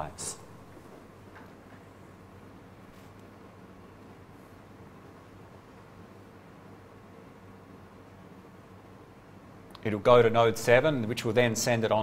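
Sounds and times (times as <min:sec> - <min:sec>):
man speaking: 0:00.0 - 0:00.5, 0:09.8 - 0:12.0
faint steady hum: 0:00.0 - 0:12.0.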